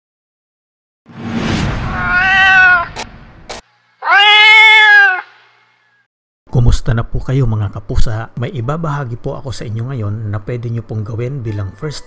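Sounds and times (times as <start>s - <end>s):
rushing noise: 1.1s - 3.6s
cat meowing: 1.9s - 3.0s, 4.0s - 5.4s.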